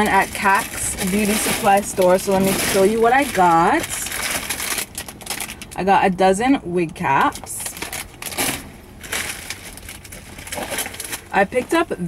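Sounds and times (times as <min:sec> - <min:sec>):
packaging rustling: 0:00.0 - 0:05.8, 0:07.1 - 0:11.8.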